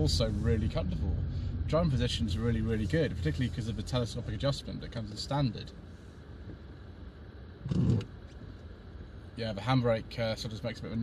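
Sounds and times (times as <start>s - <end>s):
low car cabin hum: 0.0s - 11.0s.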